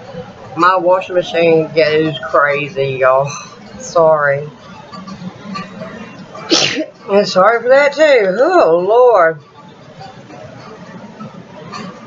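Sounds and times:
woman sneezing: 0:06.5 - 0:06.9.

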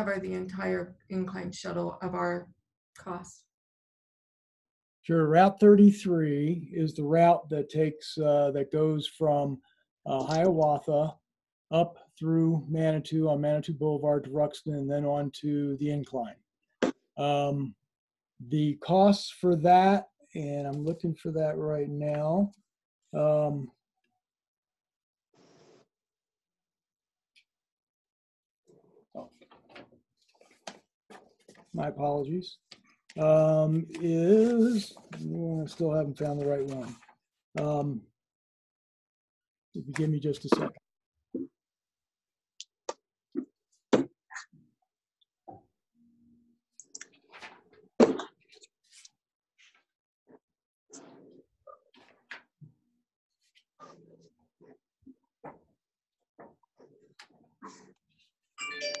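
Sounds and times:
bell-like chime: 0:58.6 - 0:59.0.

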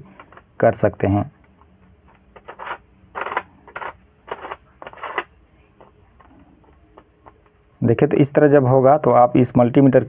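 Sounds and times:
faint high-pitched pulsing: 0:00.0 - 0:10.0
metal probe tips scraping: 0:01.4 - 0:06.4.

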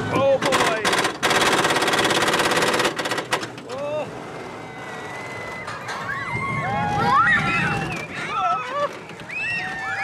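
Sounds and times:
roller coaster car rattling on track: 0:00.0 - 0:10.0.

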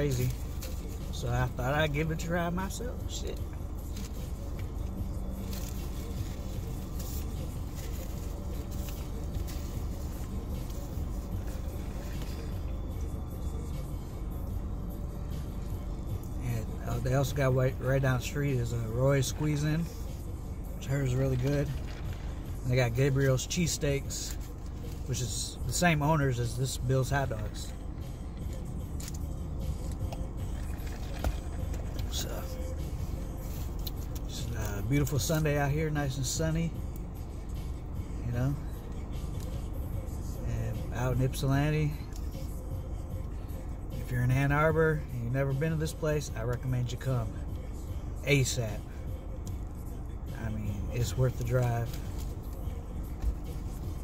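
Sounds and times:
car engine rumble inside cabin: 0:00.0 - 0:54.0
car cabin hum: 0:20.8 - 0:37.1.

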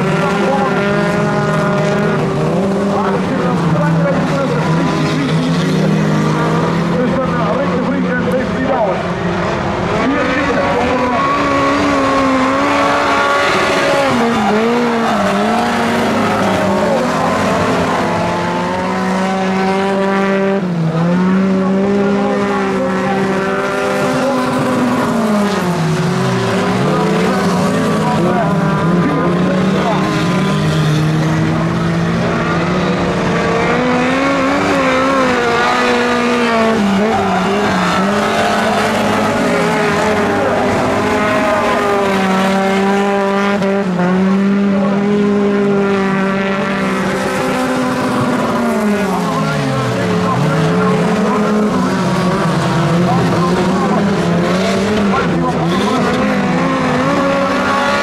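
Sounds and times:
race car engines revving: 0:00.0 - 0:58.0.

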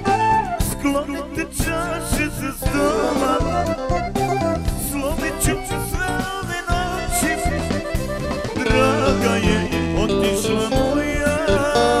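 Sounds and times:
folk band music: 0:00.0 - 0:12.0
steady beat: 0:01.6 - 0:12.0
electric guitar: 0:01.8 - 0:12.0
accordion: 0:01.9 - 0:12.0.

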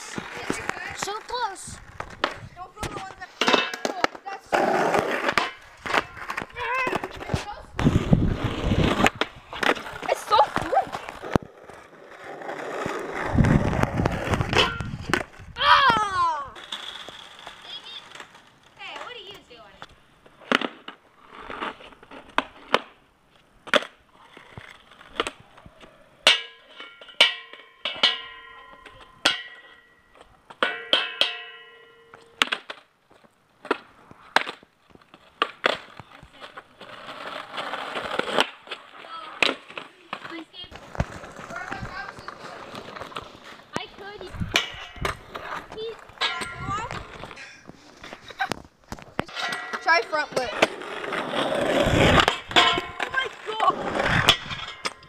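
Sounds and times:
skateboard clacks and knocks: 0:00.0 - 0:23.0, 0:26.2 - 0:32.9, 0:33.6 - 0:55.0
skateboards rolling on asphalt: 0:00.0 - 0:55.0.

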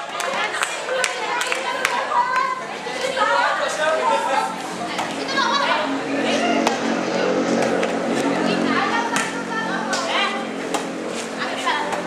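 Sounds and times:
young people calling and chattering: 0:00.0 - 0:12.0.

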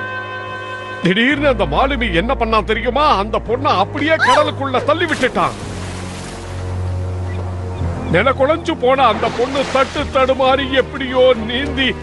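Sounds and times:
ocean waves rushing: 0:04.2 - 0:10.6.

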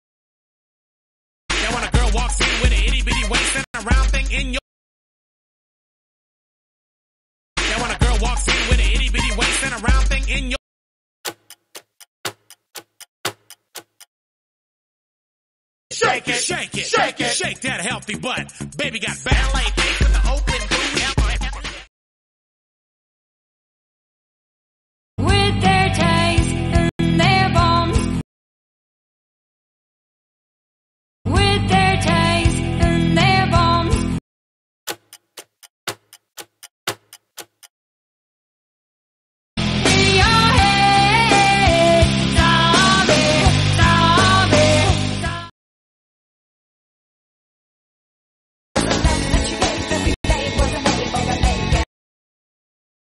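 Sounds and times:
clock ticking: 0:11.2 - 0:14.1, 0:34.9 - 0:37.7.

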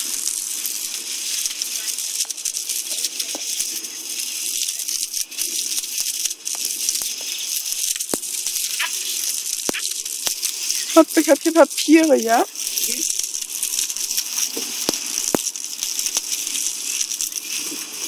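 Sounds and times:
hose water spraying onto grass: 0:00.0 - 0:18.0.

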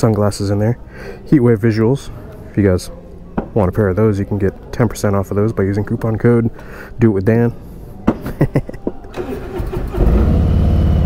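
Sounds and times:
motorcycle starter cranking: 0:09.1 - 0:11.0.

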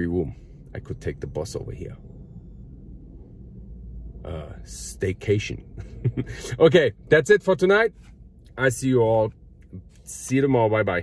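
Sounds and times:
low steady car cabin rumble: 0:00.0 - 0:11.0.

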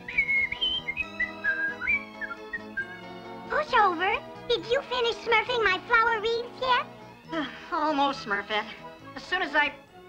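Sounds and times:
cartoon character whistling: 0:00.0 - 0:03.1
light background music: 0:00.0 - 0:10.0.

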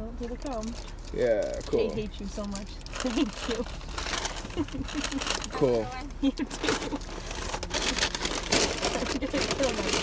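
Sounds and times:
paper bag rustling: 0:00.4 - 0:10.0.

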